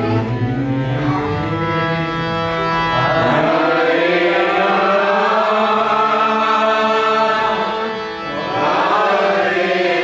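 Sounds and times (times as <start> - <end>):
harmonium chords: 0.0 - 10.0
voices chanting together: 2.9 - 10.0.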